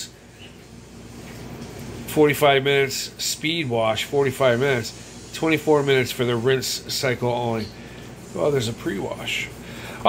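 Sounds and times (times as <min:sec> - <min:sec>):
dishwasher running: 0:00.0 - 0:10.0.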